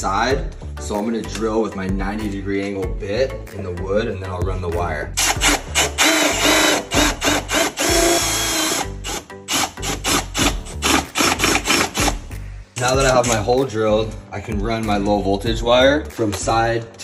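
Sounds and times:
background music: 0.0 - 17.0
cordless drill boring wood: 5.2 - 12.2.

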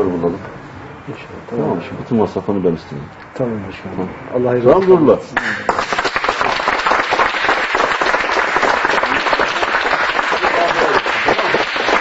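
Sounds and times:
voices: 0.0 - 5.7
people applauding: 5.4 - 12.0.

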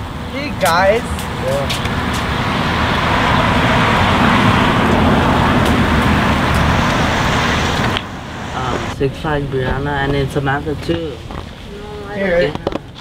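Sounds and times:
car driving past: 1.0 - 9.0.

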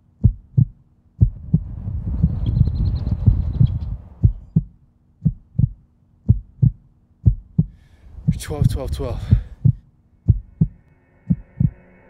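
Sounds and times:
faint steady hum: 0.0 - 12.0
heartbeat double beats: 0.2 - 11.8.

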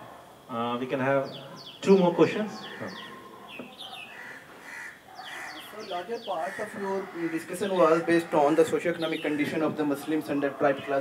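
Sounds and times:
high falling bird chirps: 1.2 - 8.0
harsh low bird calls: 1.2 - 11.0.

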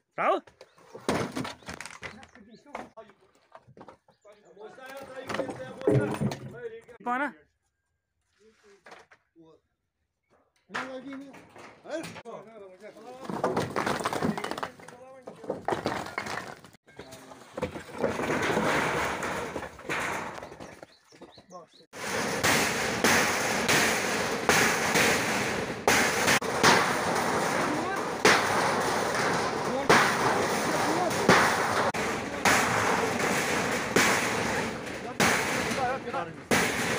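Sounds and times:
men's voices: 4.2 - 7.0, 27.2 - 36.9
metal sheets rattling: 17.7 - 20.9, 21.9 - 36.9
hammer banging on metal sheets: 18.0 - 20.8, 21.9 - 36.9.

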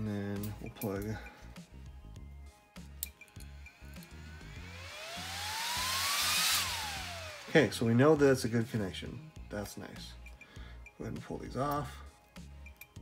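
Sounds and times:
cooling fan whine: 3.9 - 7.9.

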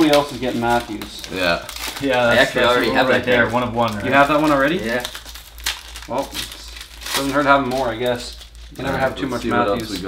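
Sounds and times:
card pack wrappers crinkling: 0.0 - 10.0.

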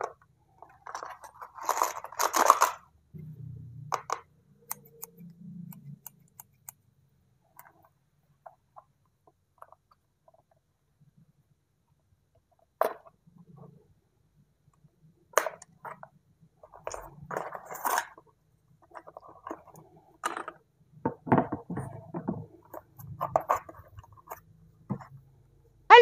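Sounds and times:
toy packaging crinkling: 0.7 - 2.9.

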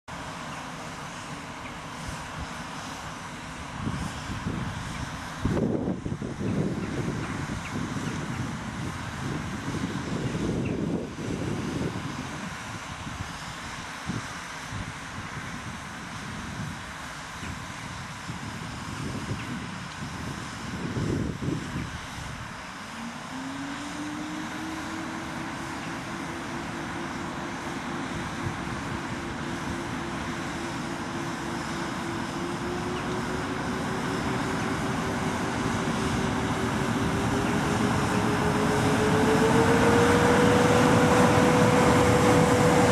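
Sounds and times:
low train rumble: 0.1 - 42.9
rising electric tone and hum: 22.8 - 42.9.

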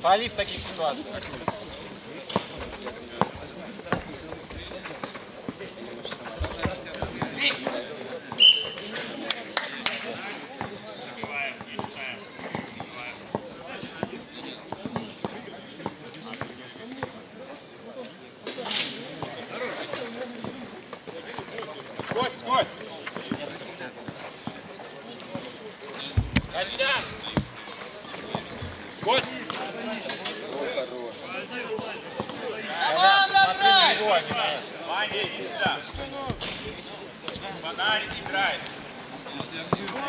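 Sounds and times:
background chatter: 0.0 - 40.0.

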